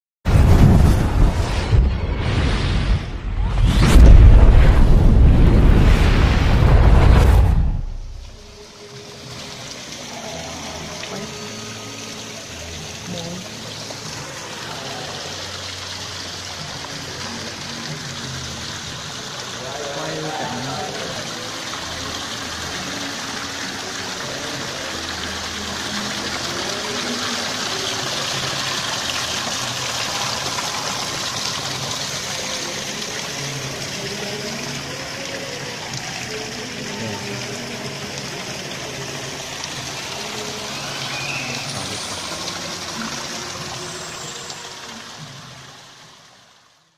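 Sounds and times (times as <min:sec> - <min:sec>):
waterfall splashing into pond: 0:00.3 - 0:46.9
music: 0:08.0 - 0:46.3
voices: 0:10.0 - 0:17.7, 0:19.6 - 0:21.7, 0:32.3 - 0:39.1.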